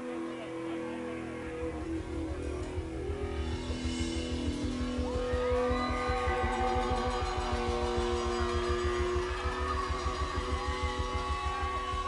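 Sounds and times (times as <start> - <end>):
electric guitar with pitch bends: 0.0 - 12.0
live rock band playing: 0.9 - 12.0.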